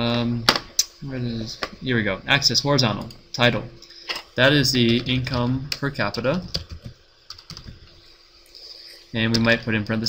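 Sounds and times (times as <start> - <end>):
keyboard typing: 6.4 - 7.8.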